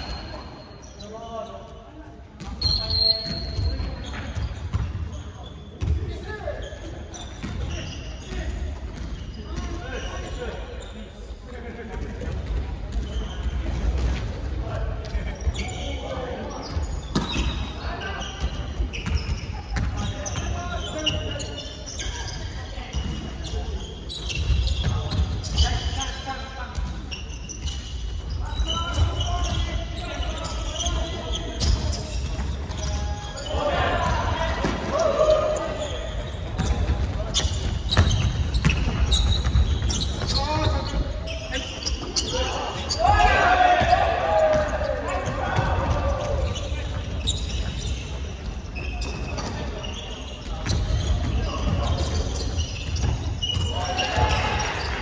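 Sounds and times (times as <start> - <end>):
players' voices and shouts: 0.0 - 55.0
balls bouncing on gym floor: 5.8 - 6.2, 18.4 - 21.1, 33.8 - 41.0.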